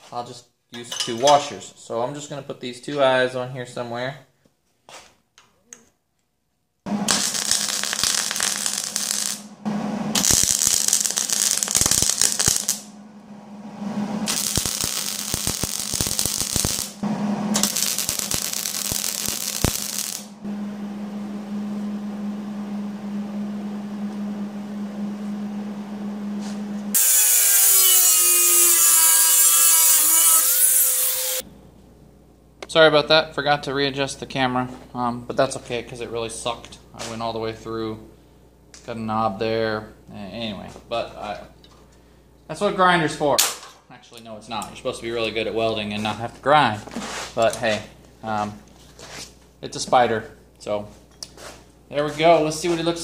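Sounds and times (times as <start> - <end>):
arc welder crackling: 6.9 - 12.9, 14.2 - 20.4, 26.9 - 31.4
steady electrical hum: 6.9 - 29.9.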